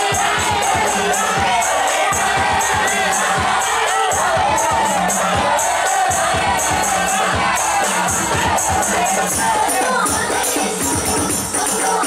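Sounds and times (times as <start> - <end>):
frame drums beating: 0.0 - 12.0
women singing: 0.0 - 12.0.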